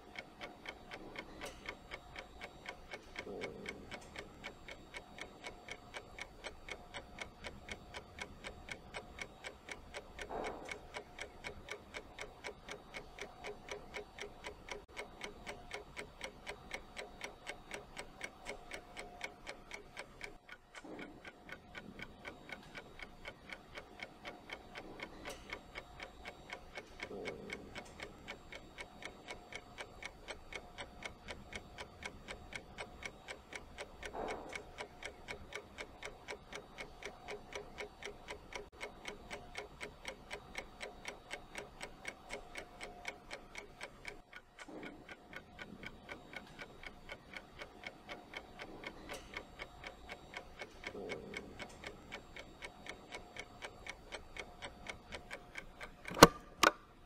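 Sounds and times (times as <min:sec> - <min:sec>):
clock ticking: 0:00.0 - 0:57.0.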